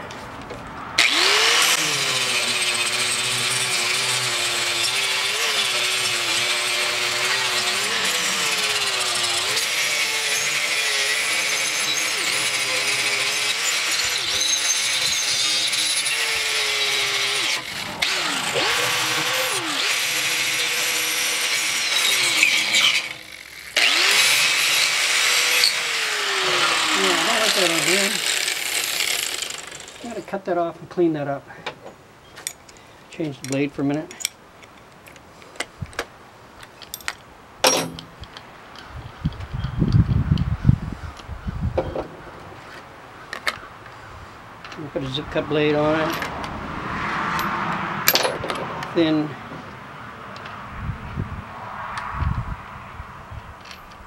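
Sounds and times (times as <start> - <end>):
angle grinder cutting metal: 1.0 - 30.2.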